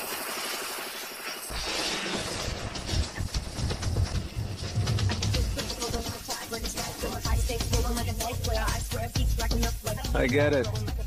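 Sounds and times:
rushing hiss: 0:00.0 - 0:10.2.

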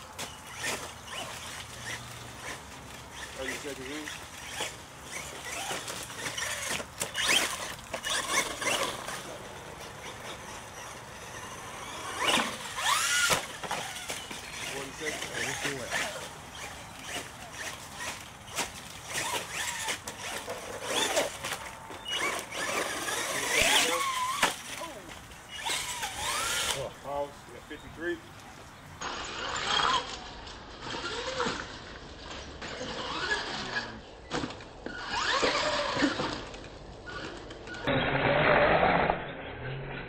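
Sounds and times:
electric toy truck motors whining: 0:00.2 - 0:26.9, 0:29.0 - 0:39.9.

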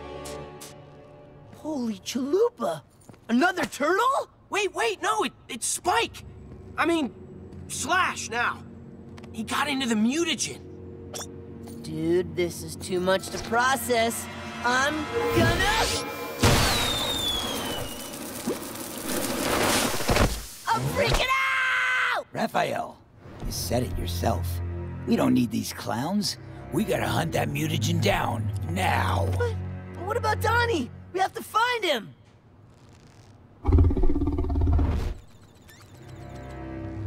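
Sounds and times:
hissing shower of sparks: 0:16.4 - 0:20.7
high whistle gliding downward: 0:16.7 - 0:18.1.

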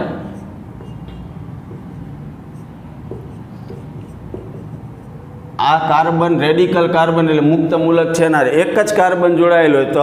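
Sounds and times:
marker pen writing on whiteboard: 0:00.0 - 0:05.6.

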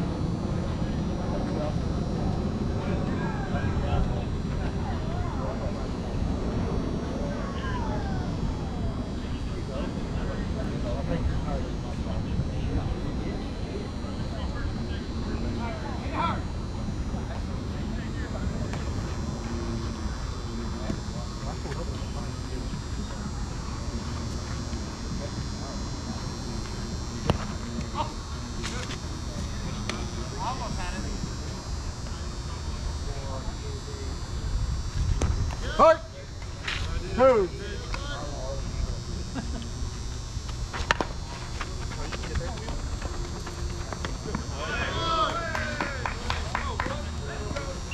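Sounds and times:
steady low rumble: 0:00.0 - 0:47.9
faint players calling: 0:35.5 - 0:47.9.

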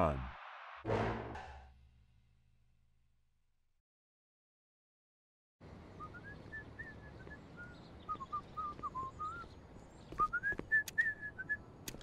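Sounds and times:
person whistling a tune: 0:10.2 - 0:11.6.

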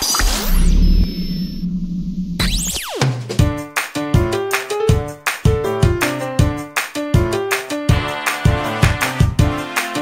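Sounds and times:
synthesized low drone: 0:00.2 - 0:02.8.

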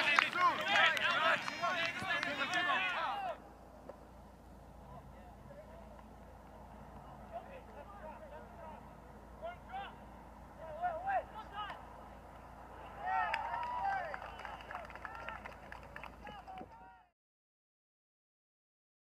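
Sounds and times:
voices shouting: 0:00.0 - 0:03.5, 0:07.0 - 0:15.4.

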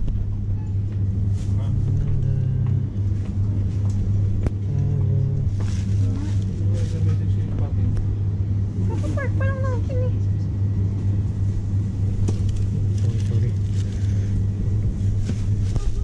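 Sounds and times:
loud steady low hum: 0:00.0 - 0:16.0
faint voices of shoppers: 0:04.7 - 0:08.0, 0:12.2 - 0:16.0.

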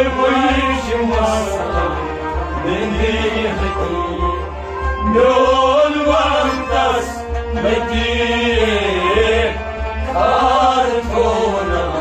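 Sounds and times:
bowed string instrument: 0:00.0 - 0:12.0
harmonium: 0:00.0 - 0:12.0
man singing: 0:00.0 - 0:12.0.

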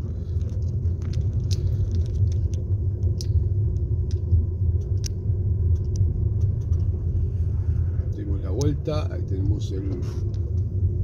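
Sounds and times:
car engine and tyres rumbling: 0:00.0 - 0:11.0
faint steady hum: 0:00.0 - 0:11.0.

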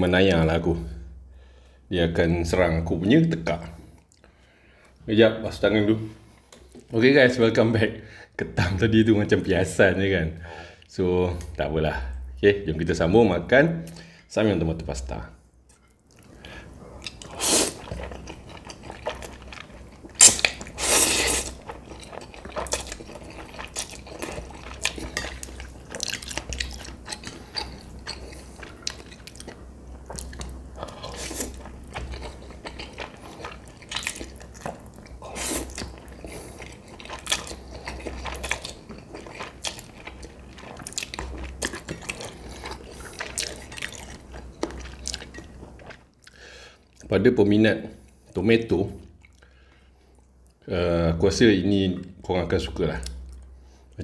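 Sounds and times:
noodles slurped: 0:17.0 - 0:29.5
chewing: 0:17.0 - 0:47.1.

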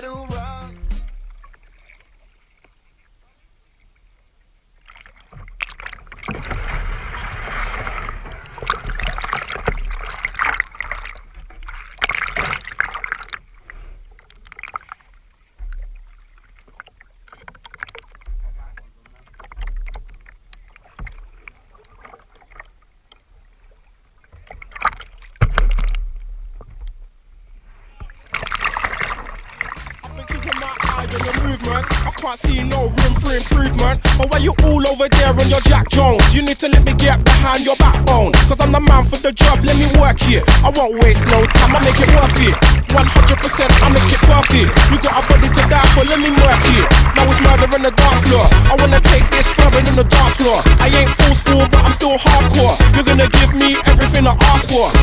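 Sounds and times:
water splashing against kayak: 0:00.8 - 0:55.0.

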